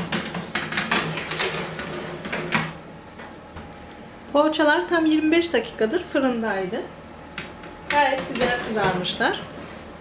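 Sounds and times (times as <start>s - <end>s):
metal tray scraping oven rack: 0.0s - 2.6s.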